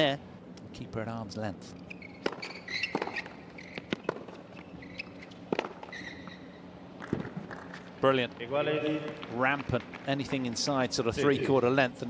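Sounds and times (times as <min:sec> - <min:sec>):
sneaker squeaks: 0:01.8 - 0:07.8
tennis ball hit by racket: 0:02.2 - 0:04.4, 0:05.5 - 0:05.9.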